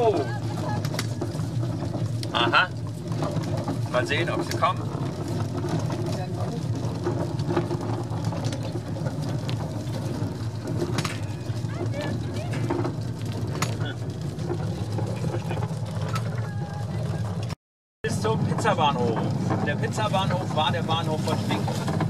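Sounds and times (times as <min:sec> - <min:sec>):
faint voices: 0:00.0 - 0:02.8, 0:11.1 - 0:14.2, 0:14.8 - 0:21.8
railway car rolling on rails: 0:00.0 - 0:22.0.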